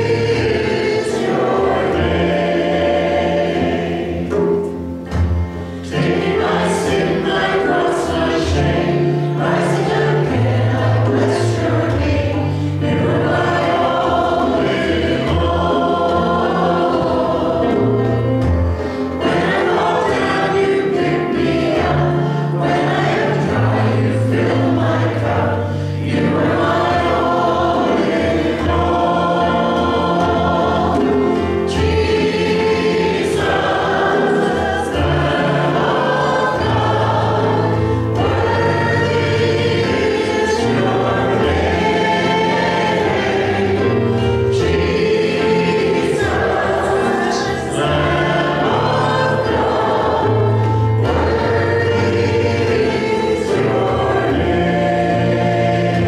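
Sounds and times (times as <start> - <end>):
group singing in parts: 0.0 - 56.0.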